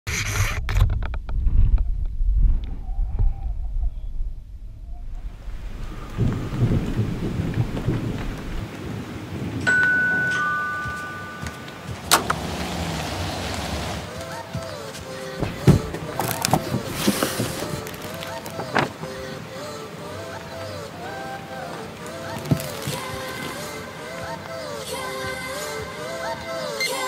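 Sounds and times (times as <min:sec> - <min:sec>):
deep thunder-like rumble: 0:01.1 - 0:09.6
steady hiss: 0:05.2 - 0:27.0.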